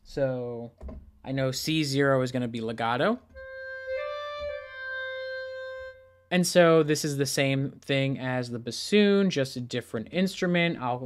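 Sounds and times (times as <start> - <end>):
clarinet notes: 3.3 - 6.8.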